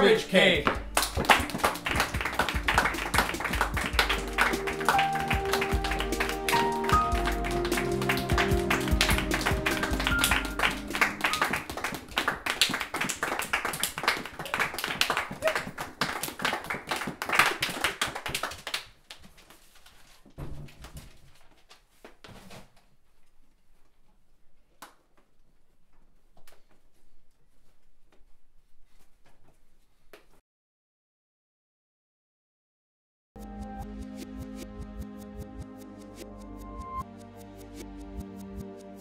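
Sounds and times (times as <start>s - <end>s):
people clapping: 0.0s - 19.3s
music with held notes: 0.8s - 12.1s, 33.4s - 39.0s.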